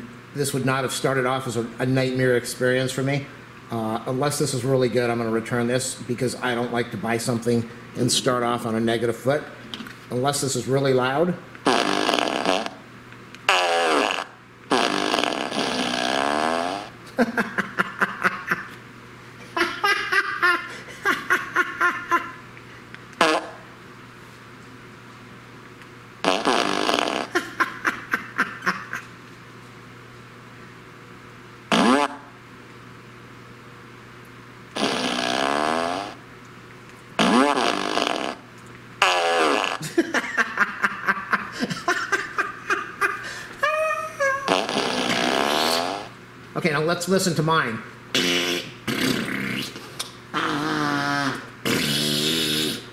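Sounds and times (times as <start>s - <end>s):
fart sounds from a speaker: 11.6s - 12.8s, 13.4s - 17.0s, 23.2s - 23.6s, 26.2s - 27.4s, 31.7s - 32.4s, 34.8s - 36.2s, 37.2s - 39.8s, 44.5s - 46.2s, 48.1s - 52.9s.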